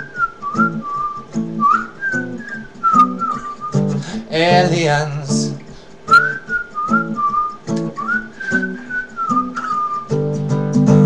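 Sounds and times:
person whistling a melody: 0.0 - 4.7, 6.1 - 10.3
acoustic guitar chords: 0.0 - 11.0.

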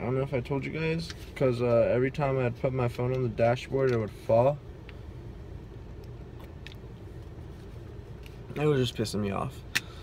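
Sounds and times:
low rumble of car cabin: 0.0 - 10.0.

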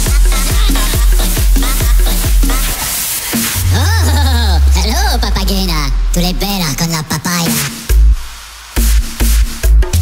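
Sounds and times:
swooping pitch-bending synth sounds: 3.6 - 7.0
deep bass note: 3.6 - 7.1.

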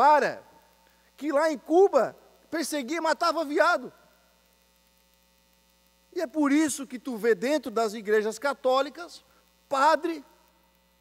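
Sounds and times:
faint mains hum: 0.0 - 11.0.

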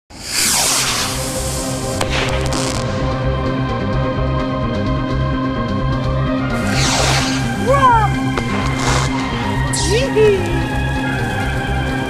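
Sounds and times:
whooshing sweep falling in pitch: 0.2 - 2.8, 6.6 - 9.6
synthesizer music: 6.5 - 12.0.

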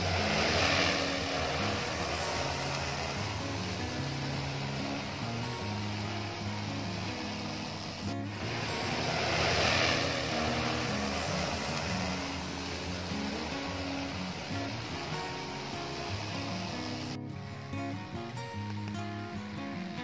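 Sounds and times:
drone rotors whirring: 0.0 - 17.2.

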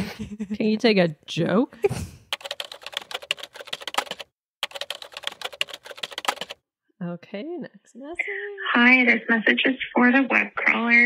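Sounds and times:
rapid typing on keyboard: 2.3 - 6.6.

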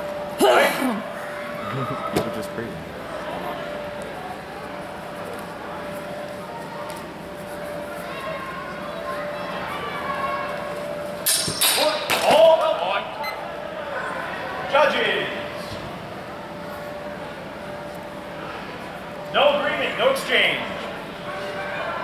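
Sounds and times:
murmur of voices in hall: 0.0 - 22.0
swords clashing: 11.3 - 12.4.

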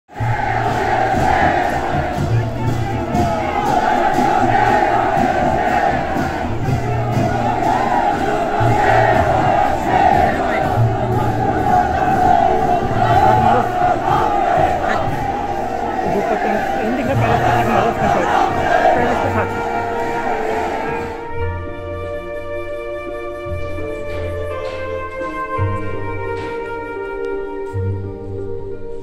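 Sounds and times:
crowd shouting: 0.1 - 21.3
brass and drum band music: 0.1 - 29.0.

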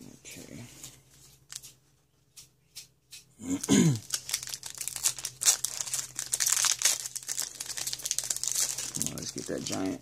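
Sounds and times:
foil wrapper crinkling and tearing: 3.8 - 10.0.

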